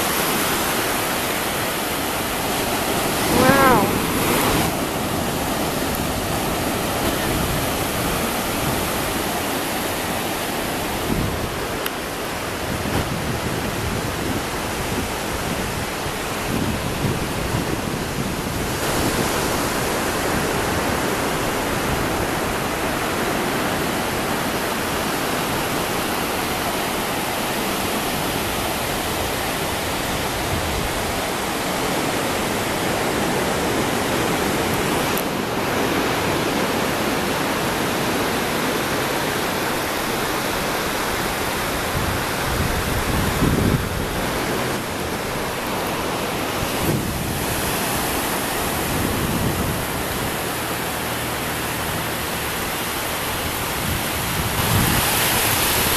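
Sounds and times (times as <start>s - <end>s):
ocean surf breaking on beach: 0.0s - 55.9s.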